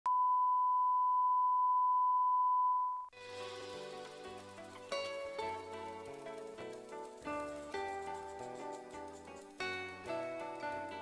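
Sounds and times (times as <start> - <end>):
music: 3.1 - 11.0.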